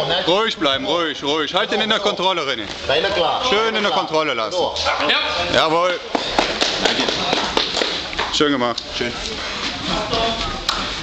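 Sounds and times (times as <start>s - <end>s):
people clapping: 6.1s - 9.3s.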